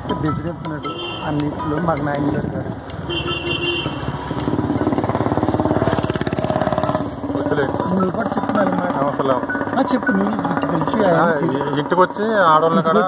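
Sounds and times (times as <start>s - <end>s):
motorcycle engine running: 3.5s - 13.0s.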